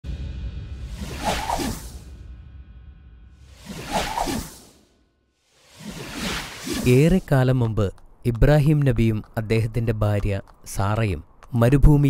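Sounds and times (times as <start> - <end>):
whoosh sound effect: 0.1 - 7.2.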